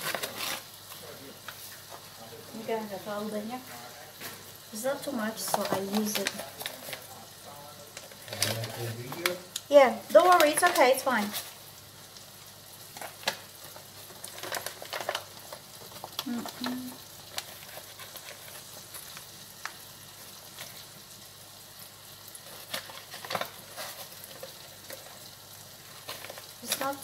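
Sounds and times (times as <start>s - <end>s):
plastic packets crinkling: 0.0s - 1.6s, 5.1s - 7.2s, 7.9s - 21.2s, 22.0s - 27.0s
food sizzling in a pan: 0.0s - 27.0s.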